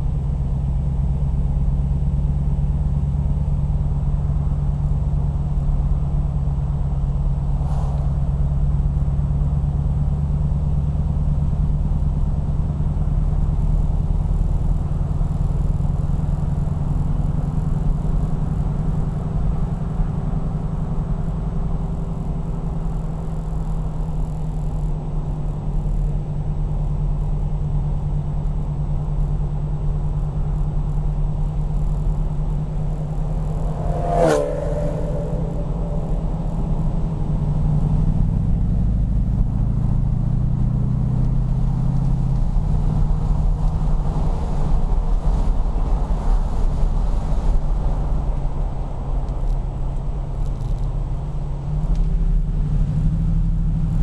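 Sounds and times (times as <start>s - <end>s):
car engine throbbing: 0.0s - 54.0s.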